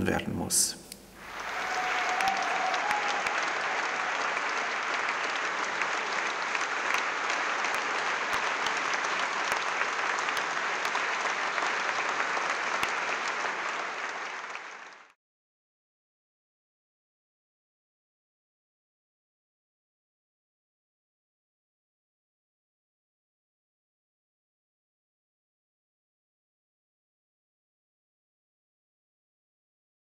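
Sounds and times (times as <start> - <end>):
audience applauding: 1.2 - 15.2.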